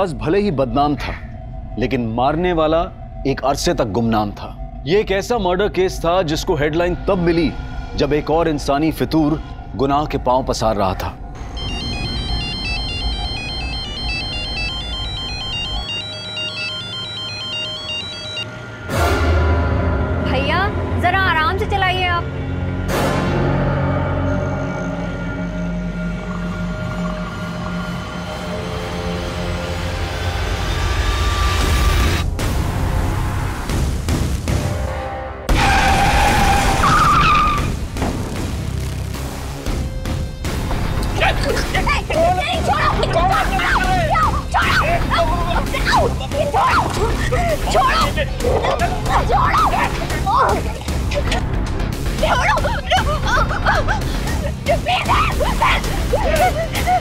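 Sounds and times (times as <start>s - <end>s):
phone ringtone beeps: 11.5s - 18.5s.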